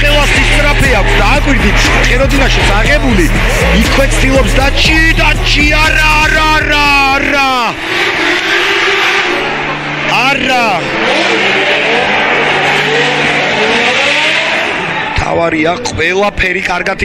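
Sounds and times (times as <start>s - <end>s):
car engines revving: 0.0s - 16.7s.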